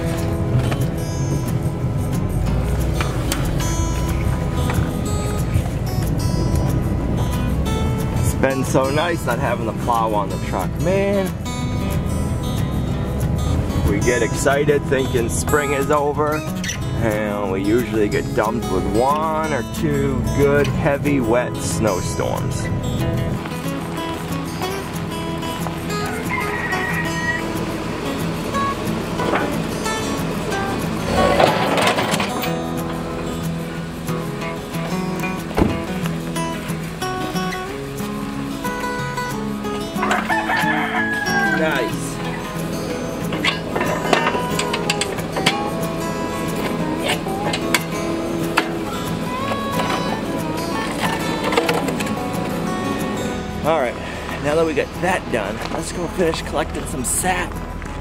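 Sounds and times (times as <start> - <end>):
background music: 0.0 - 58.0
rooster crowing: 26.0 - 27.8, 40.0 - 42.2.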